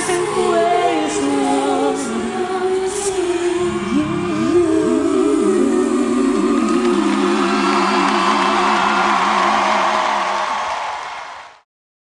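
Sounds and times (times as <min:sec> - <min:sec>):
live pop ballad with voices and band: 0:00.0 - 0:09.6.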